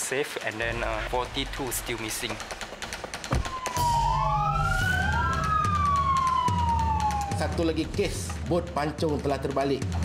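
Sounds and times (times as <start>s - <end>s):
police sirens wailing: 3.3s - 8.3s.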